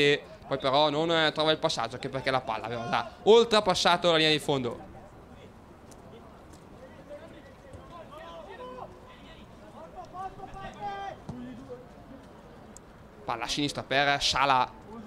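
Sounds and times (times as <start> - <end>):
open-air ambience: 0.0 - 15.0
footballers shouting: 1.9 - 3.7, 6.9 - 11.8.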